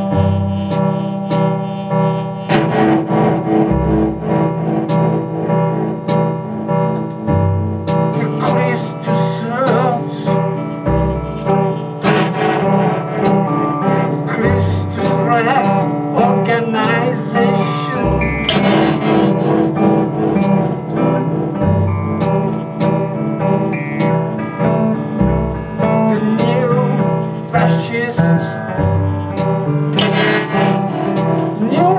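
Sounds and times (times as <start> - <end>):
deep bass note: 0.0 - 8.5, 9.6 - 26.4
amplified guitar: 0.0 - 31.9
band playing: 0.0 - 31.9.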